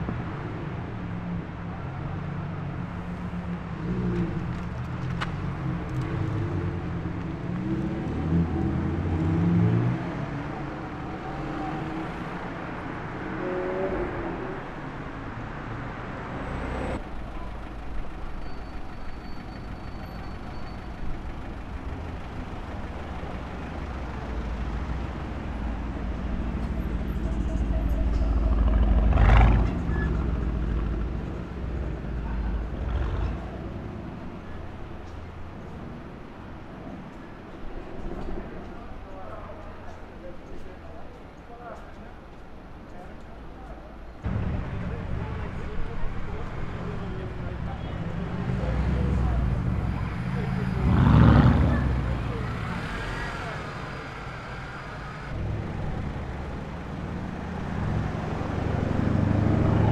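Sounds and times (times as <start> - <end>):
street traffic: 0.0 - 59.9
car engine rumbling and revving: 2.1 - 18.8, 21.0 - 36.2, 44.2 - 59.9
sports car engine pulling away: 24.8 - 34.2, 46.4 - 54.0, 55.3 - 59.9.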